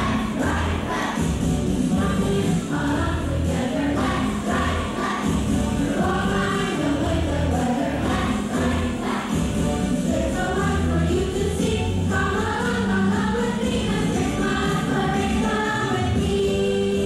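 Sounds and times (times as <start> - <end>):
children's choir singing: 0.0 - 17.0
steady bass line: 0.0 - 17.0.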